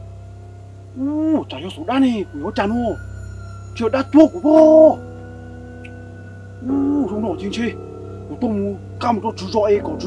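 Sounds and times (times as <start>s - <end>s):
background music drone: 0.0s - 10.0s
man speaking: 1.0s - 3.0s, 3.8s - 5.0s, 6.6s - 10.0s.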